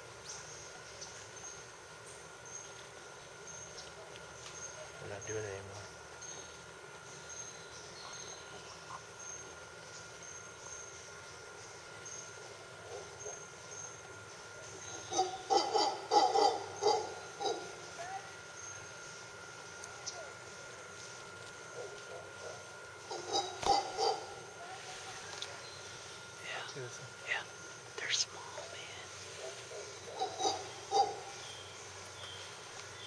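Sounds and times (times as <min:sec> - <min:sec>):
howler monkeys calling: 0:12.2 - 0:19.1, 0:21.6 - 0:24.6, 0:27.4 - 0:32.6.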